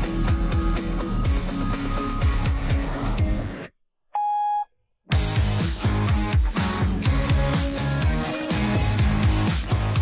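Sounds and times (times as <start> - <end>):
steady electronic beep: 4.2 - 4.7
beat-driven music with guitar: 5.1 - 10.0.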